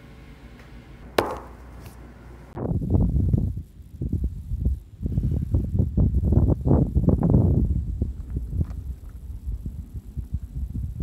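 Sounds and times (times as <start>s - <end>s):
plastic die landing on table: 1.2s - 1.6s.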